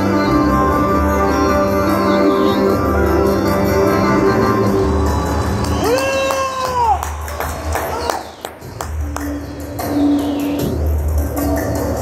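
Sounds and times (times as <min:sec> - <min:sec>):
folk dance music with low beat: 0:00.0 - 0:12.0.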